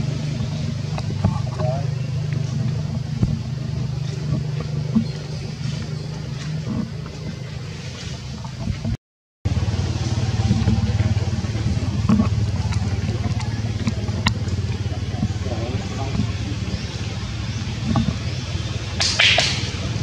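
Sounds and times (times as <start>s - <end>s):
low rumble: 0.0s - 20.0s.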